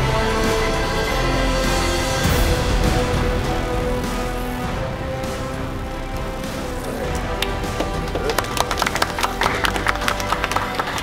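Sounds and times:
background music with held tones: 0.0 - 11.0
people clapping: 6.8 - 11.0.

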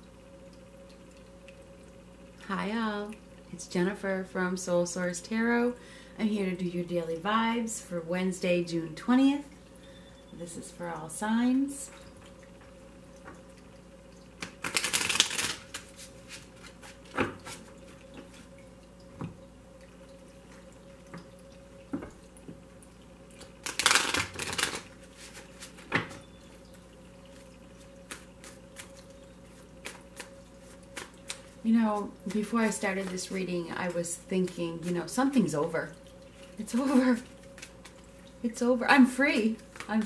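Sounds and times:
small water fountain trickling: 0.0 - 40.0
cards shuffling: 14.4 - 17.6, 23.6 - 25.8.

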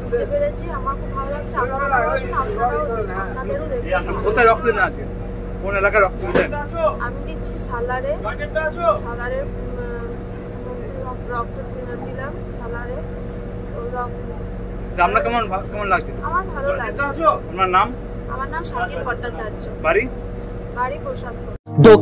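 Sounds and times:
woman talking: 0.0 - 4.4, 6.6 - 8.3, 9.0 - 13.1, 13.7 - 14.5, 16.2 - 17.2, 18.3 - 19.6, 20.8 - 21.6
low machine hum: 0.0 - 22.0.

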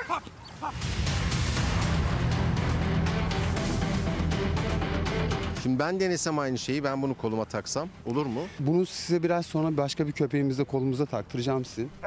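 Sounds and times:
music with steady beat: 0.8 - 5.6.

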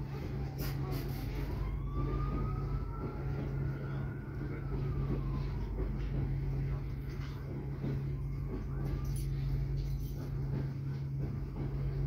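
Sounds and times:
freight train wagons rumbling: 0.0 - 12.0
thin rising whine: 0.0 - 12.0.

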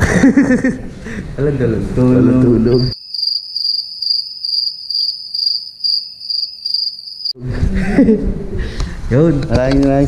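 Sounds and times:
cricket chirping: 2.7 - 7.4.

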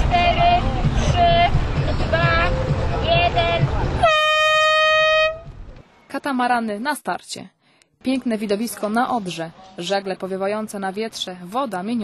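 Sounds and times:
air horn blasts: 4.0 - 5.5.

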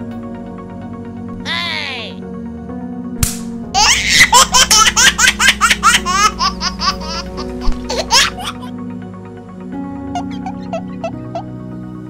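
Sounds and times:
background music: 0.0 - 12.0
rapid high-pitched laughter: 10.2 - 11.4.

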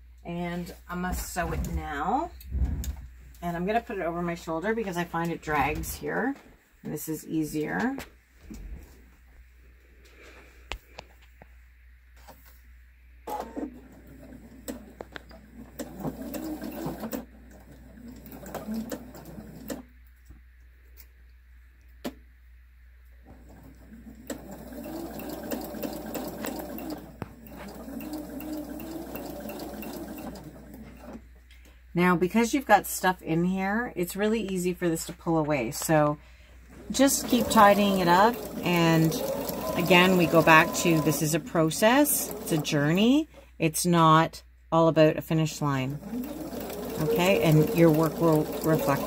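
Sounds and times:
sewing machine stitching: 13.3 - 19.9, 23.3 - 31.2, 36.8 - 43.2, 45.8 - 49.0.

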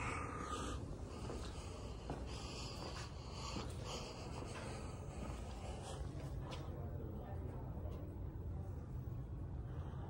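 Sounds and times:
soft breaths into microphone: 0.0 - 7.2
steady low rumble: 0.0 - 10.0.

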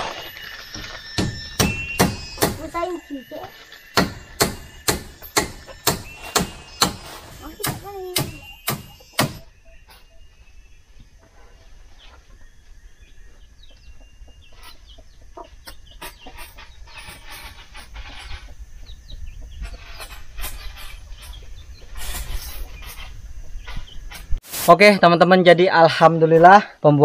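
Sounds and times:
bird calls: 0.0 - 24.4
sharp knock: 1.2 - 2.6, 4.0 - 9.5.

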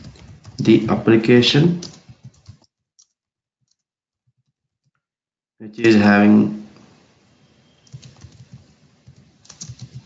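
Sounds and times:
computer keyboard typing: 0.0 - 0.9, 1.8 - 3.8, 7.8 - 10.0.

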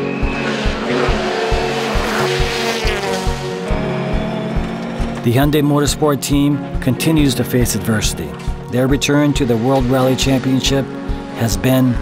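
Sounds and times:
rally car engine revving: 0.0 - 5.6
background music with steady beat: 0.0 - 12.0.

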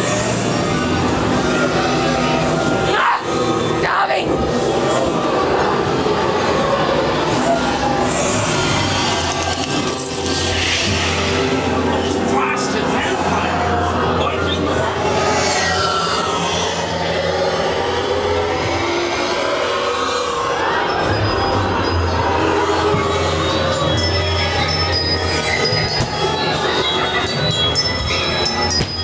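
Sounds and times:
dark sustained music: 0.0 - 29.0
low drone: 0.0 - 29.0.

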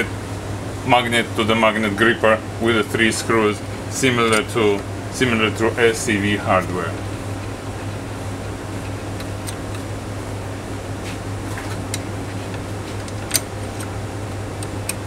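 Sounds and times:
low machine hum: 0.0 - 15.0.

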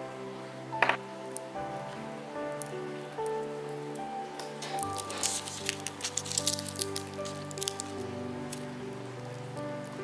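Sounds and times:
soft piano-like music: 0.0 - 10.0
papery crackling of bulb peeling: 4.6 - 8.7.

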